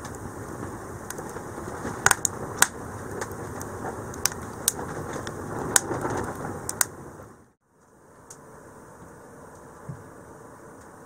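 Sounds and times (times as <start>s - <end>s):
crackles and pops of burning logs: 0.0s - 8.4s
wood fire burning: 0.0s - 11.0s.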